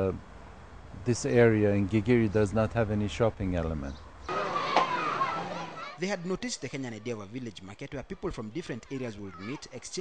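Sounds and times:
children shouting in a pool: 4.3s - 7.4s, 8.9s - 9.7s.

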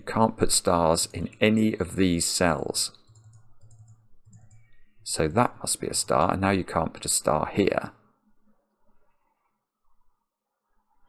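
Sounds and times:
mouse and keyboard clicking: 3.0s - 4.8s.

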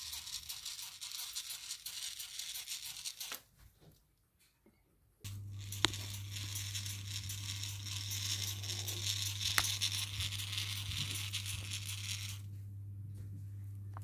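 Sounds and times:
steady low hum: 5.2s - 14.0s.

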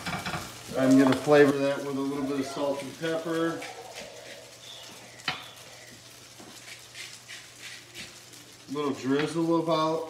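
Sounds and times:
noodles sizzling in a pan: 0.0s - 10.0s
range fan hum: 0.0s - 10.0s.

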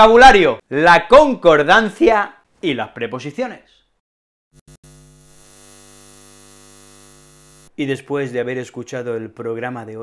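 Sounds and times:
electrical buzzing hum: 4.6s - 7.8s.

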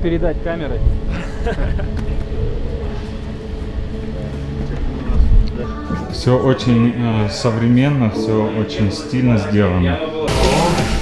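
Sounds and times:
low rumble: 0.0s - 8.2s
steady mechanical hum: 0.0s - 8.3s.

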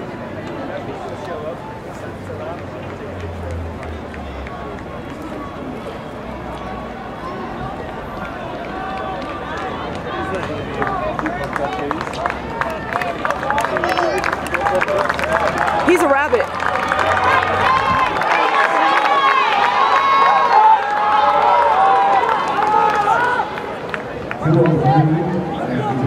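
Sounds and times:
spectators talking and calling out: 0.0s - 26.0s.

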